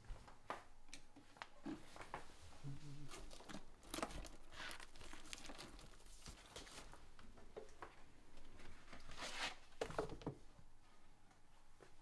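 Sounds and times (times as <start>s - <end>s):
record sleeves rustling: 3.1s - 7.2s, 8.6s - 9.8s.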